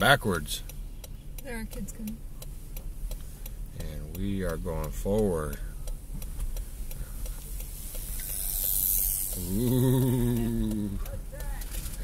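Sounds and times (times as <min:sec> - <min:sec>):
car rolling on road: 0:00.0 - 0:12.0.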